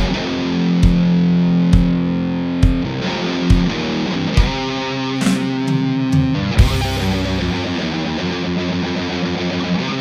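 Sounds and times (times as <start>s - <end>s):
drum hits: 0.0s - 7.5s
distorted electric guitar: 0.0s - 10.0s.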